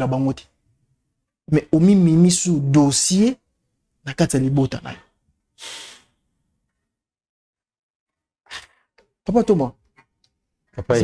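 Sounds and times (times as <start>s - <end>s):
man breathing into microphone: 5.6s - 6.2s.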